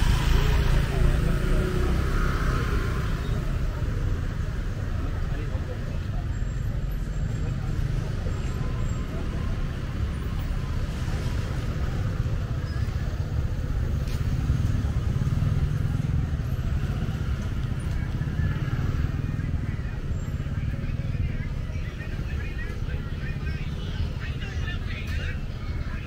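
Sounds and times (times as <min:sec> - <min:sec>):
cars and motorbikes passing: 0:00.0 - 0:26.0
road traffic rumble: 0:00.0 - 0:26.0.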